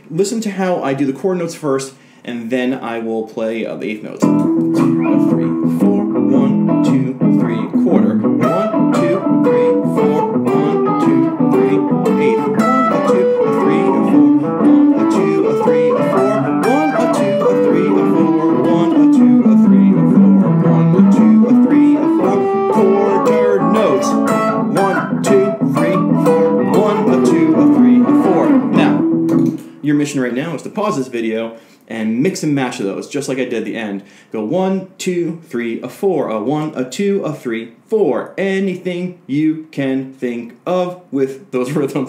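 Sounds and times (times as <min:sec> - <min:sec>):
electric guitar blues solo: 0:04.2 - 0:29.8.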